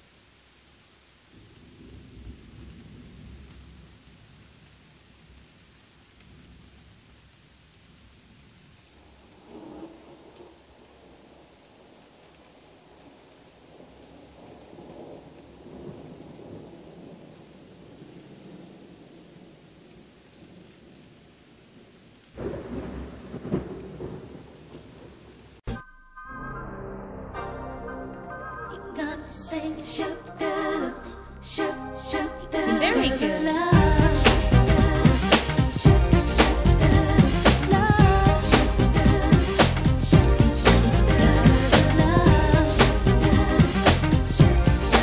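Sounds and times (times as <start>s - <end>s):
steady hiss: 0.0s - 25.7s, 29.0s - 45.0s
steady rain: 0.0s - 25.7s, 29.2s - 45.0s
loud thunderclap: 1.4s - 4.0s, 13.8s - 19.5s, 22.4s - 25.3s, 33.8s - 45.0s
rumbling thunder: 1.4s - 4.6s, 9.0s - 21.1s, 22.4s - 25.6s, 33.8s - 45.0s
low rumble: 33.8s - 39.3s.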